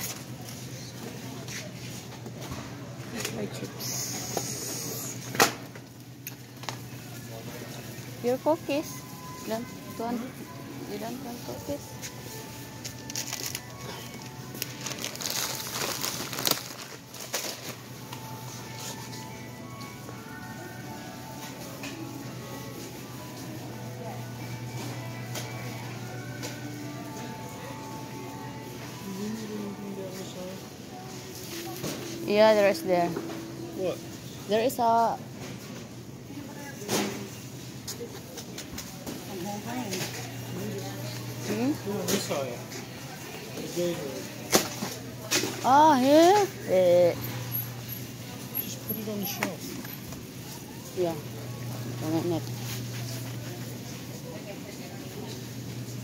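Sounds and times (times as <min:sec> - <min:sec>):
shopping cart rattling: 0:11.3 - 0:18.0.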